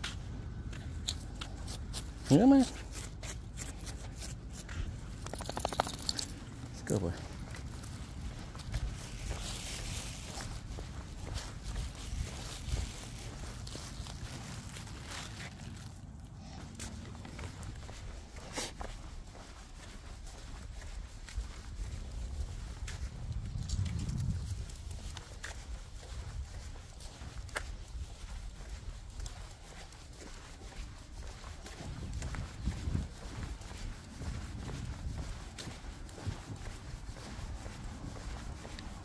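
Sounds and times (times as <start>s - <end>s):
light footsteps: 0.0s - 39.0s
small clicks and rustling: 5.2s - 6.4s.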